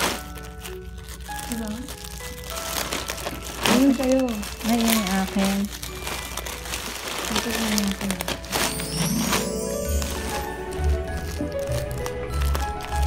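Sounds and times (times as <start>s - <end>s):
plastic packaging crinkling: 0.0s - 13.0s.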